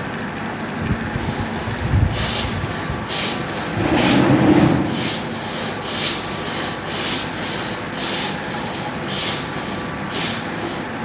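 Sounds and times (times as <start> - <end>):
forceful breathing through nose: 2.1 - 10.8.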